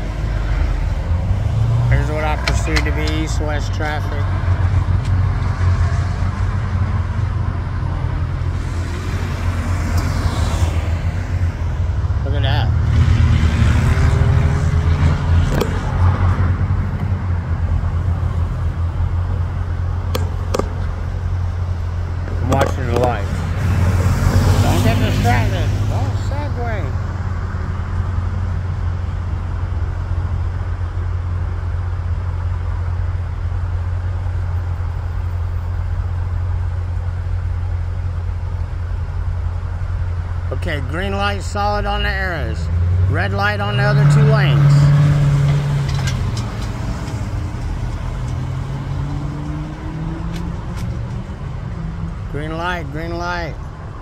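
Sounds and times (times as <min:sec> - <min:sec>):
cars passing: 0:00.0 - 0:54.0
traffic low rumble: 0:00.0 - 0:54.0.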